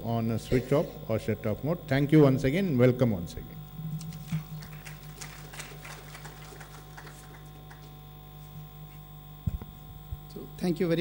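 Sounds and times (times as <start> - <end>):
steady low hum: 0.0 - 11.0
faint scattered applause: 4.1 - 8.1.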